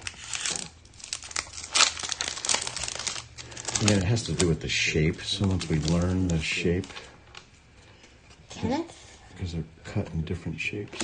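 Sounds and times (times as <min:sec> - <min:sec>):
foil wrapper crinkling: 0:00.0 - 0:07.5.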